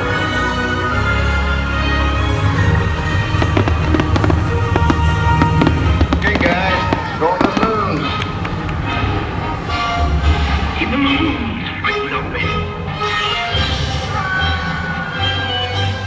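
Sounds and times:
loud show music: 1.6 - 16.0
fireworks popping and crackling: 2.4 - 8.8.

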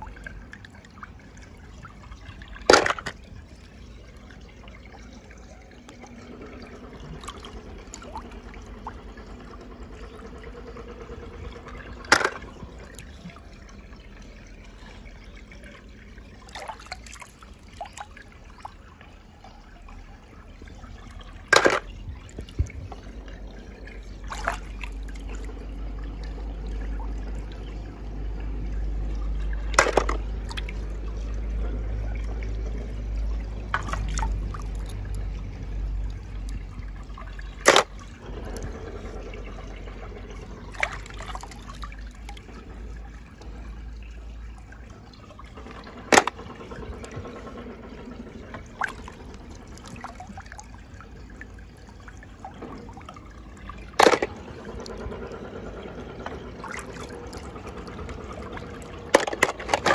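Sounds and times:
toy cars splashing into water: 0.0 - 4.1, 5.8 - 19.2, 19.9 - 27.6, 28.8 - 44.4, 45.0 - 59.9
water trickling and sloshing: 0.0 - 59.9
smaller splashes: 6.9 - 19.0, 20.9 - 27.7, 28.8 - 43.7, 44.3 - 59.9.

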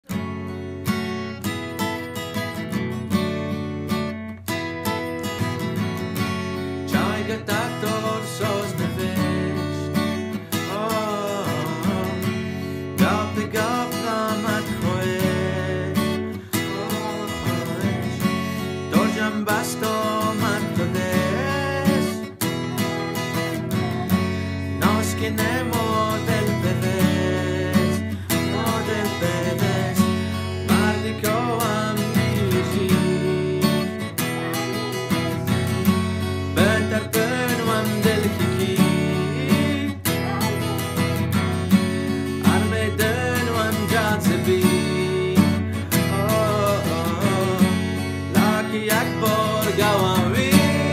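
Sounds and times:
man singing: 4.8 - 50.9.

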